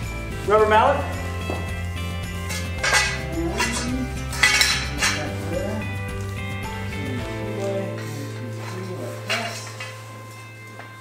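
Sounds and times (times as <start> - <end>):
background music: 0.0 - 11.0
metal extrusions clinking: 0.0 - 11.0.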